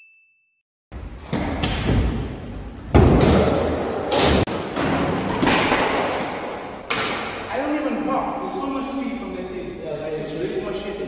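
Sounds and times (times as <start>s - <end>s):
skateboard scraping and rolling: 1.0s - 7.5s
skateboard thuds: 1.2s - 7.4s.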